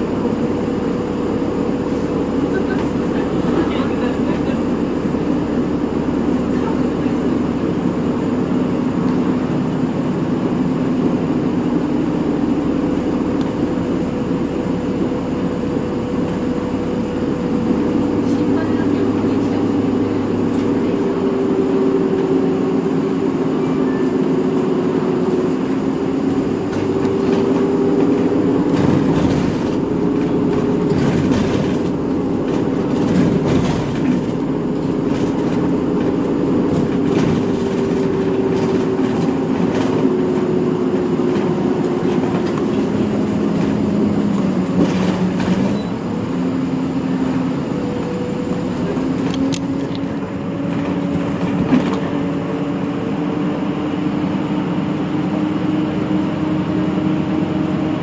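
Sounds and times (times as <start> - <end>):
bus engine hum: 0.0 - 58.0.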